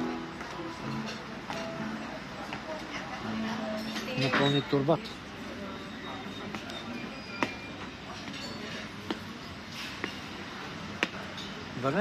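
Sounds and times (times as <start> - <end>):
restaurant background noise: 0.0 - 12.0.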